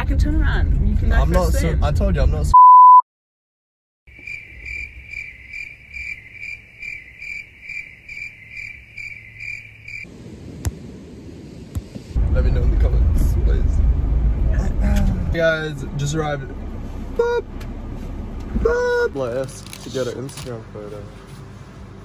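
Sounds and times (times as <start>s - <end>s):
cricket chirping: 4.1s - 10.1s
low rumble: 10.1s - 19.8s.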